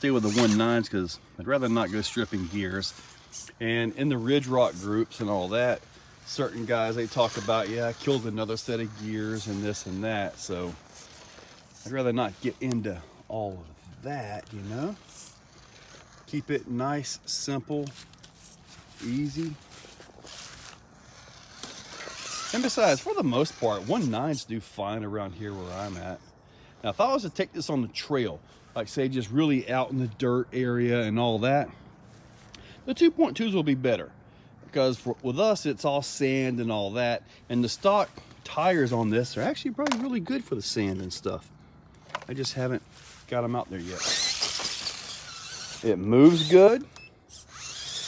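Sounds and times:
toy car tyres crunching on concrete: 0.0s - 26.2s, 37.0s - 41.4s, 42.0s - 48.0s
electric motors whining: 0.0s - 27.2s, 37.5s - 48.0s
tires scraping on rock: 0.0s - 31.7s, 34.7s - 48.0s.

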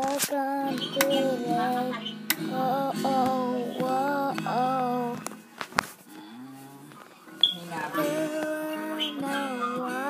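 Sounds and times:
child humming a low note: 0.3s - 5.1s.

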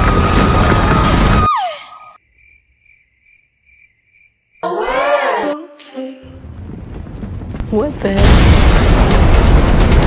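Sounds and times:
cricket chirps: 2.2s - 4.6s
rumbling crashing noise: 6.4s - 10.0s.

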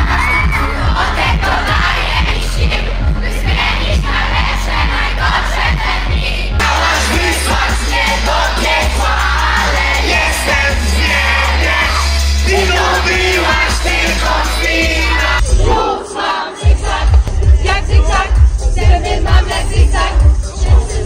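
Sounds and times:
drum beat: 0.0s - 15.8s, 16.6s - 21.0s
deep bass: 0.0s - 15.9s, 16.7s - 21.0s
crowd singing along: 0.0s - 21.0s.

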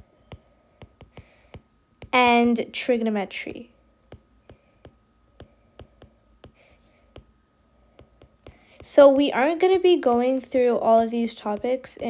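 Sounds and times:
stylus tapping on screen: 0.2s - 2.2s, 4.1s - 9.3s
person speaking: 2.0s - 7.3s, 8.0s - 12.0s.

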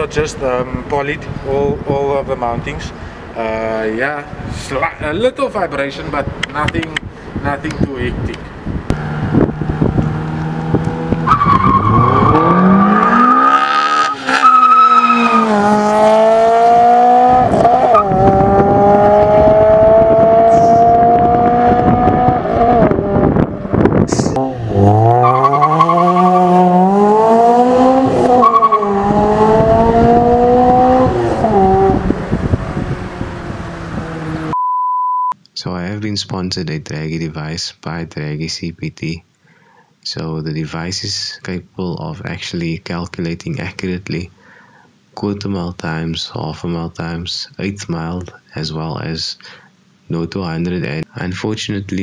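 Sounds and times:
car engine revving hard: 8.9s - 23.8s, 24.4s - 34.5s
short steady beep: 34.5s - 35.4s.

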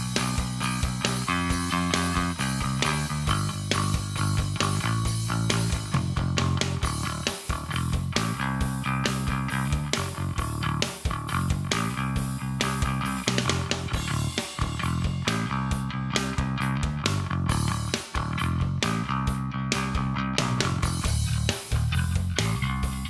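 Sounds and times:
electric bass guitar finger-style: 0.0s - 23.0s.

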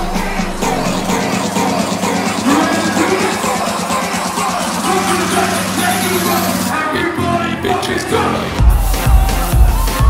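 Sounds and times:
loud electronic dance music: 0.0s - 10.0s.

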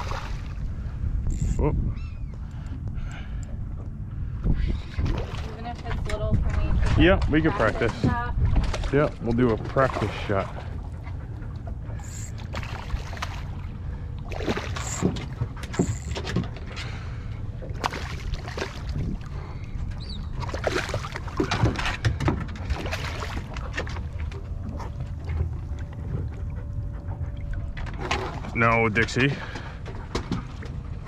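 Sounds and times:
fish thrashing and splashing water: 0.0s - 0.6s, 4.8s - 6.1s, 6.8s - 11.2s, 11.9s - 26.4s
wind rumble on microphone: 0.0s - 14.4s, 15.0s - 31.0s.

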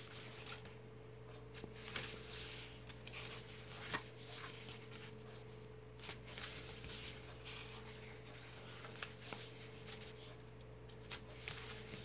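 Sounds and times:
paper pages rustling: 0.0s - 0.8s, 1.4s - 12.0s
faint steady hum: 0.0s - 12.0s.

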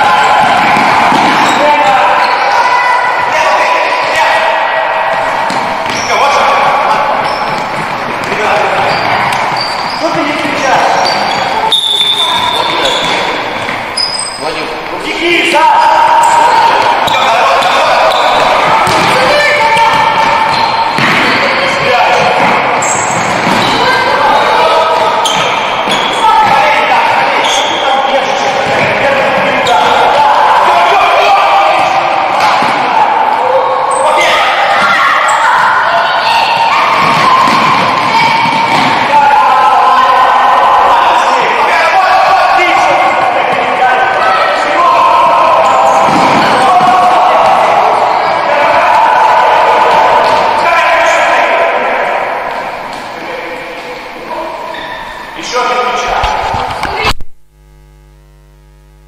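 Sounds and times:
voices calling out: 0.0s - 57.1s
shoes squeaking: 5.1s - 14.9s, 16.2s - 26.6s.

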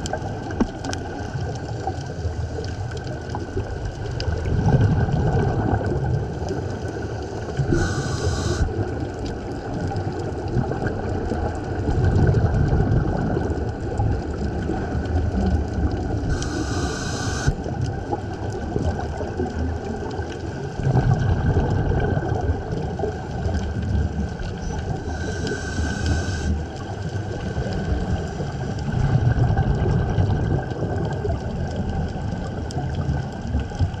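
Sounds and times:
exhaled bubbles gushing underwater: 0.0s - 34.0s
regulator hissing inhalations: 6.8s - 8.8s, 16.3s - 17.6s, 25.0s - 26.7s.

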